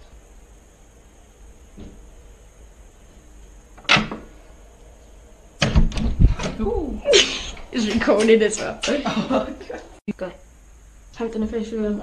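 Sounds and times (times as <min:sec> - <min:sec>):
door pushed open with thumps: 0:05.6 - 0:06.6.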